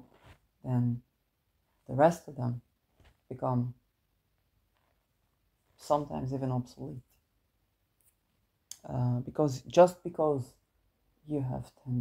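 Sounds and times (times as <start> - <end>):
woman speaking: 0.6 - 1.0, 1.9 - 2.6, 3.3 - 3.8, 5.8 - 7.0, 8.7 - 10.5, 11.3 - 12.0.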